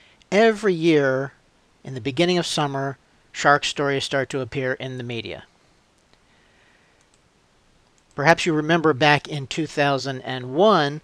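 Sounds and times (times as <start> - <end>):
faint clicks: 5.9 - 6.3, 7.0 - 8.2.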